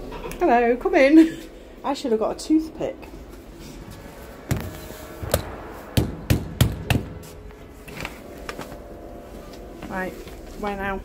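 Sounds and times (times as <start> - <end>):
lift hum: 0.0 - 11.0.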